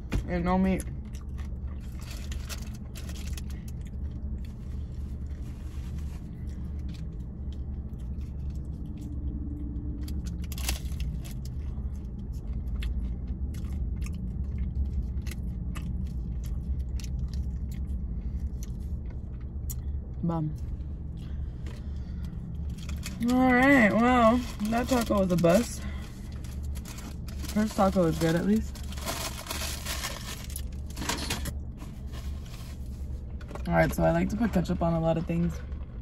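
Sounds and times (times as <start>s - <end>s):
low rumble: 0.0s - 36.0s
chewing crunchy taco shell: 0.8s - 23.3s, 24.6s - 27.8s.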